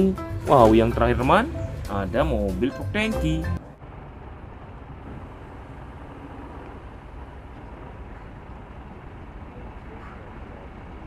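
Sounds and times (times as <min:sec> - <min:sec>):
truck diesel engine running: 0:00.0 - 0:11.0.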